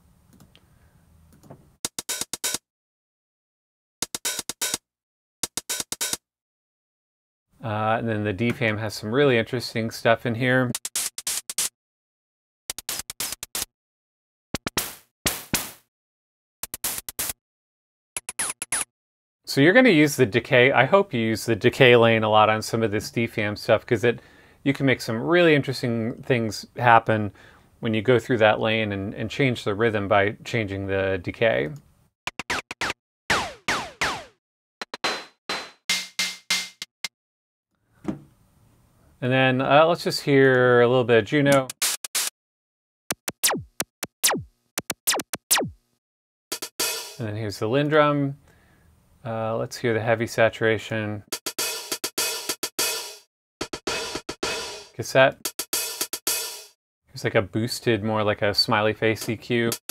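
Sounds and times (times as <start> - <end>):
analogue drum hits: 33.3 - 36.9, 51.4 - 56.6.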